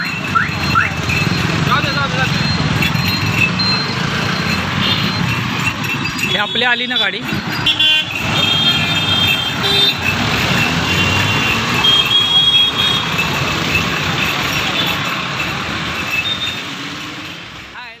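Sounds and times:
motorcycles passing: 0:00.0 - 0:18.0.

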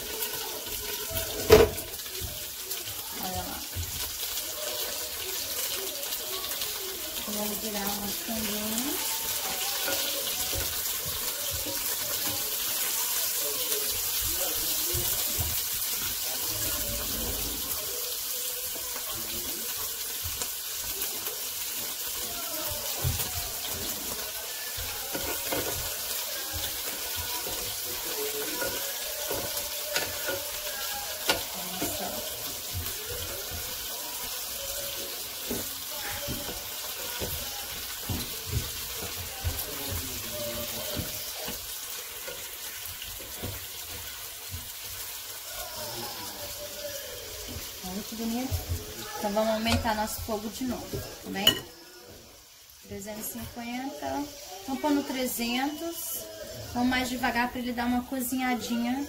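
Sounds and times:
meat sizzling on grill pan: 0:00.0 - 0:59.0
tongs clicking against pan: 0:28.4 - 0:32.1.

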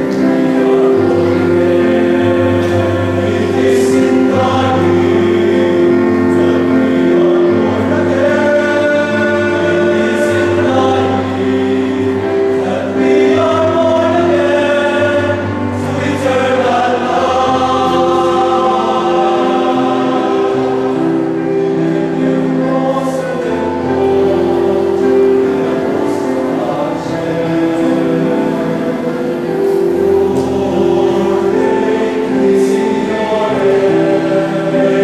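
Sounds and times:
male choir singing: 0:00.0 - 0:35.0.

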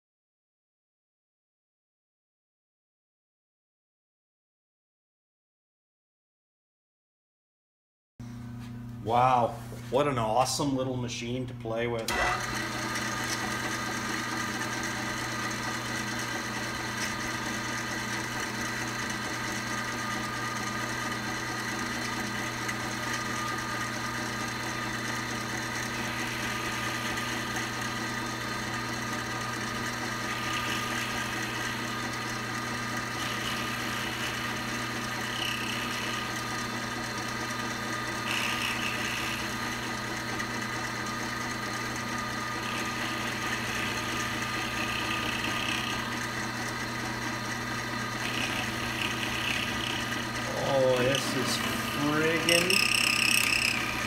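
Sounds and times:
jig borer motor humming: 0:12.0 - 0:54.0
tool cutting brass: 0:12.1 - 0:54.0.

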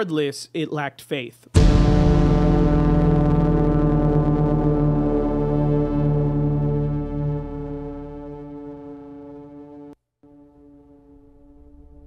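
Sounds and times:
deep cinematic music drone: 0:01.6 - 0:12.0.

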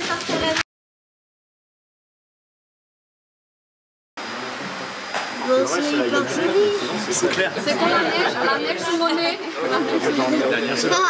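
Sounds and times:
room full of people hiss: 0:00.0 - 0:00.6, 0:04.2 - 0:11.0
faint voices: 0:04.2 - 0:11.0.

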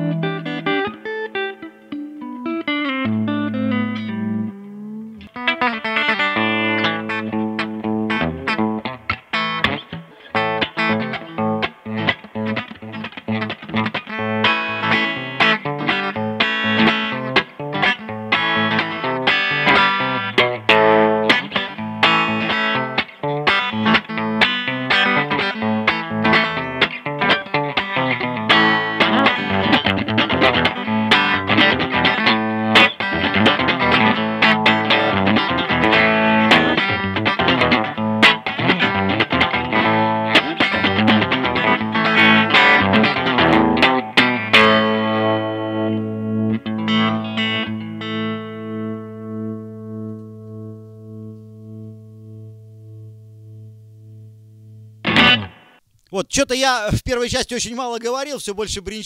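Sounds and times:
clean electric guitar picking: 0:00.0 - 0:55.8.

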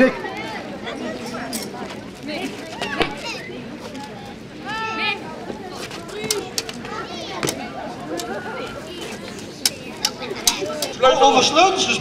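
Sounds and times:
murmur of children's voices: 0:00.0 - 0:12.0.

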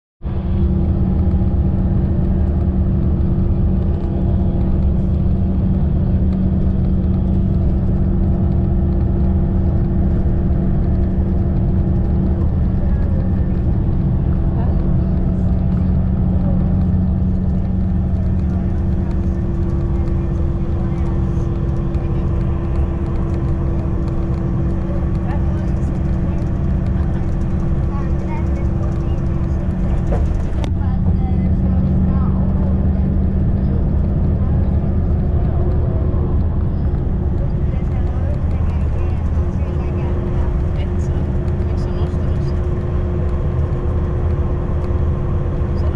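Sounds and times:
bus engine and road drone: 0:00.2 - 0:45.9.

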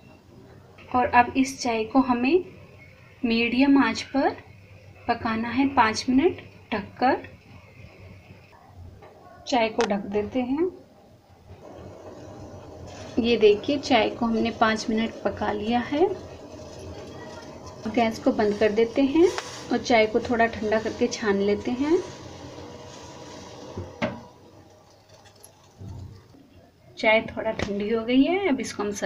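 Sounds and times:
pot of tea boiling: 0:00.0 - 0:27.0.

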